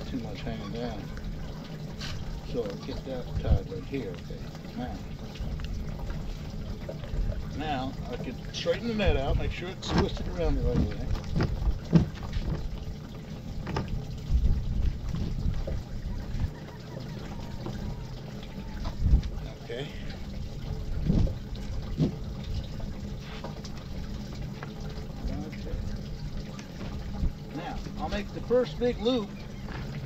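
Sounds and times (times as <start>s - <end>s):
water lapping against boat hull: 0.0s - 30.0s
wind rumbling on microphone: 13.6s - 16.6s, 18.7s - 19.5s, 20.3s - 22.8s.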